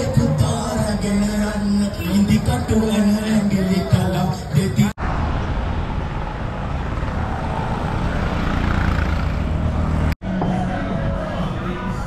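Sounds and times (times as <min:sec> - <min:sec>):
vehicle engine rumble: 0:00.0 - 0:12.0
wind and road noise: 0:00.0 - 0:12.0.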